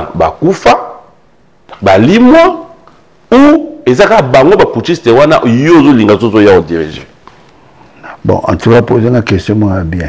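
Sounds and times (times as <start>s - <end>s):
man speaking: 0.0s - 1.1s, 1.7s - 7.2s, 8.0s - 10.0s.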